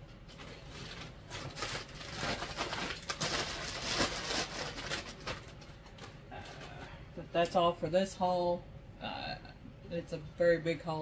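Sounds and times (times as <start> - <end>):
shopping bags crinkling: 0.3 - 6.2.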